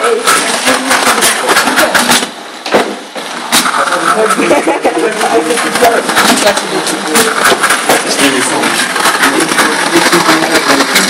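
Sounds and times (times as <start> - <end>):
rapid irregular knocking clatter: 0.1 - 11.0
small electric motors running: 3.7 - 11.0.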